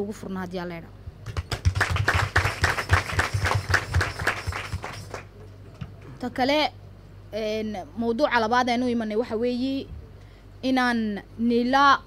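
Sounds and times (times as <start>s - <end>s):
people applauding: 1.2s - 5.3s.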